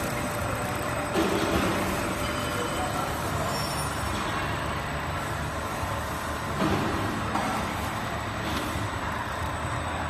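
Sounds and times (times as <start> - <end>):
label cutting machine humming: 0.0 - 10.0.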